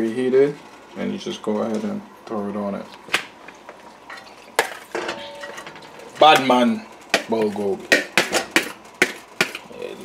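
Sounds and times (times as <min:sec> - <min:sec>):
mixing bowl knocking on metal pot: 0:05.0 - 0:09.7.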